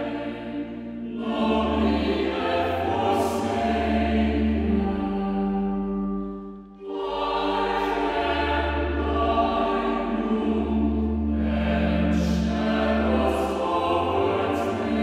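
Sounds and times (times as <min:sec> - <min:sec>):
choir singing sustained chords: 0:00.0 - 0:15.0.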